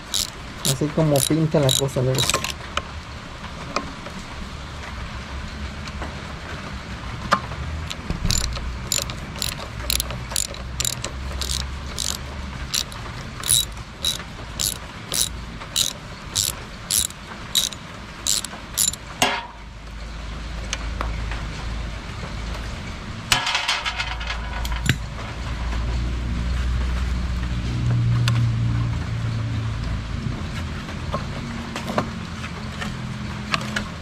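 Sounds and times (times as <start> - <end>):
socket ratchet clicking: 0.0 - 2.6, 7.9 - 19.0.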